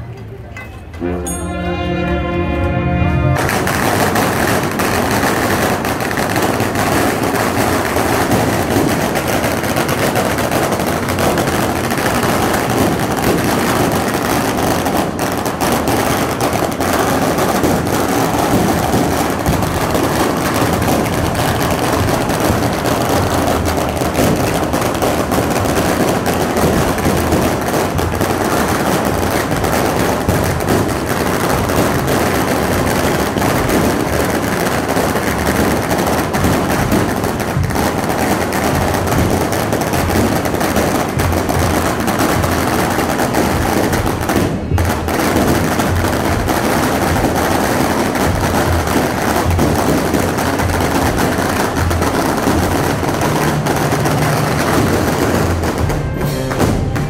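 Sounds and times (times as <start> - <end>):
firecrackers crackling: 0.0 - 57.0.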